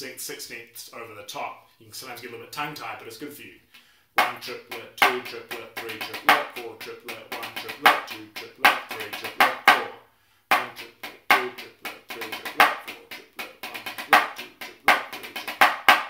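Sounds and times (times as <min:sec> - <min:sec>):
drumsticks on a practice pad: 0:04.2 - 0:09.9, 0:10.5 - 0:16.0.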